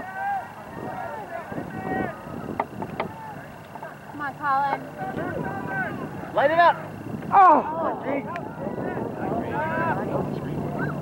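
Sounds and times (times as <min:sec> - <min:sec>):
distant people calling and shouting: 0:00.0 - 0:11.0.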